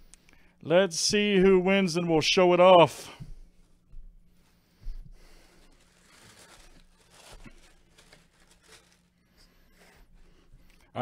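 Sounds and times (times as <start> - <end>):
paper rustling and crinkling: 5.2 - 10.1.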